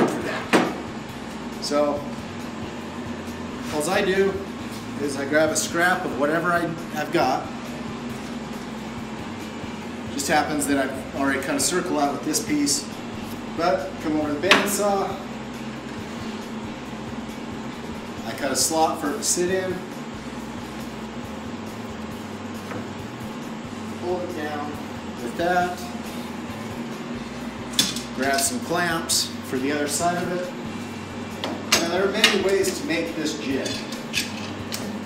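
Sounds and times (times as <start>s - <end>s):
mechanical hum: 0.0s - 35.0s.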